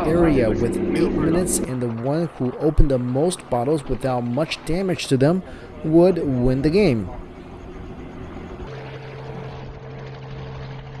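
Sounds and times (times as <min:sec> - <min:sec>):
helicopter engine and rotor drone: 0:00.0 - 0:10.9.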